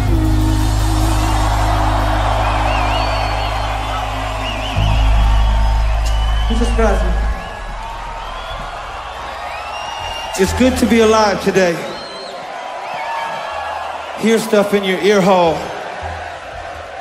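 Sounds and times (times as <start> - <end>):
rock band holding low note: 0.0 - 10.4
crowd cheering and whistling: 0.0 - 17.0.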